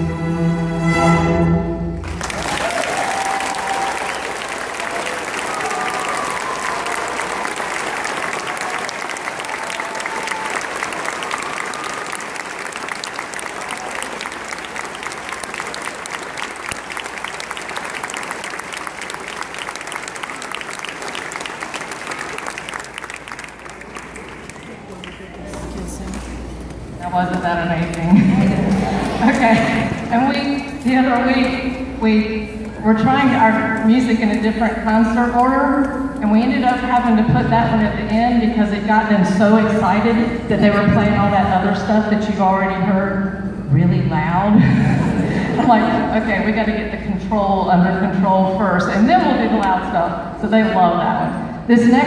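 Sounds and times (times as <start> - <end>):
string orchestra chord: 0.0 - 2.2
audience applause: 2.0 - 26.8, 27.9 - 30.1.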